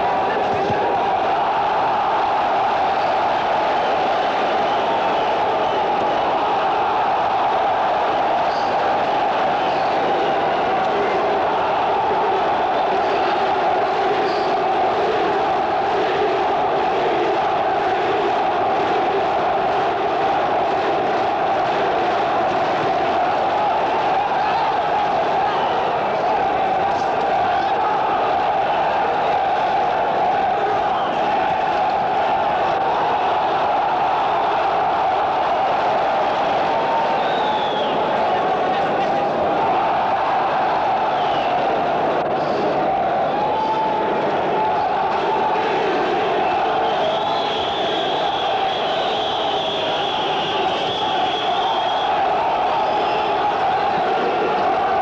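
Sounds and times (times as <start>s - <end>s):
crowd shouting: 0.0s - 55.0s.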